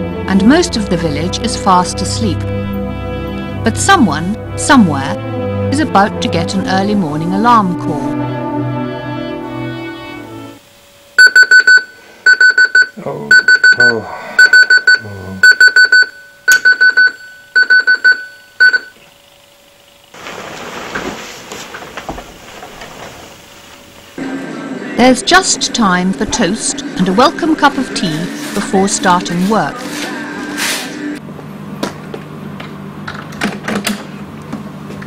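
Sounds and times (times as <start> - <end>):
alarm clock beeping: 11.2 - 19.0.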